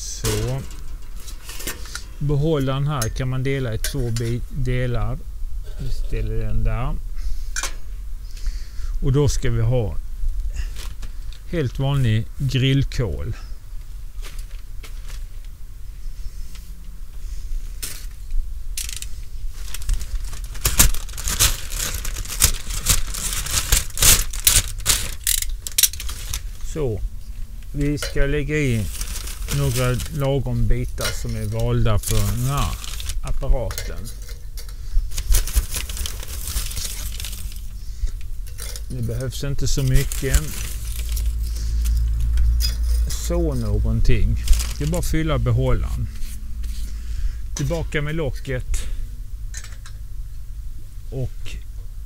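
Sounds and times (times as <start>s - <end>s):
charcoal bag crinkling and crackling: 0.0s - 2.8s, 18.8s - 46.3s
charcoal clinking into metal basket: 0.2s - 2.0s.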